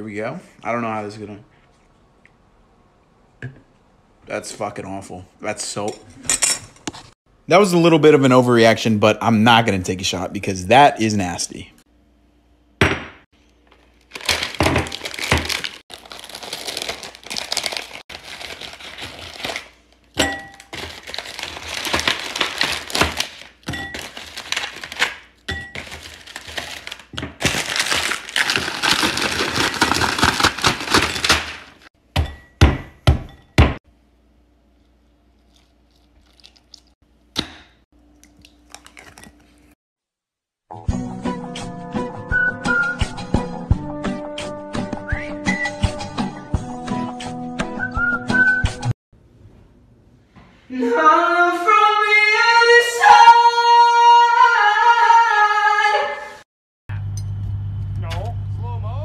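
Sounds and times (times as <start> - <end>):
plastic packaging crinkling: 13.7 - 31.9.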